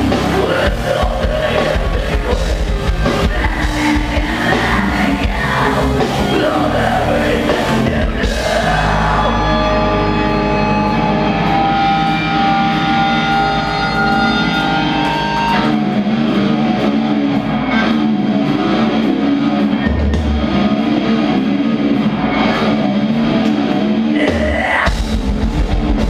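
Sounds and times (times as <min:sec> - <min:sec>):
metal band playing: 0:00.0 - 0:26.0.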